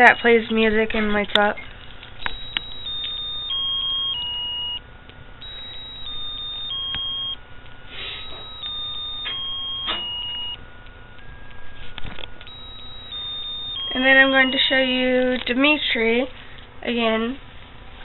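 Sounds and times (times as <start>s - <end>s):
toy playing electronic lullaby: 0.0s - 16.4s.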